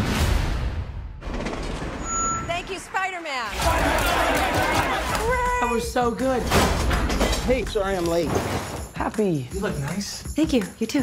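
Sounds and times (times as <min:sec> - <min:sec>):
high beep tone: 0:02.0 - 0:02.7.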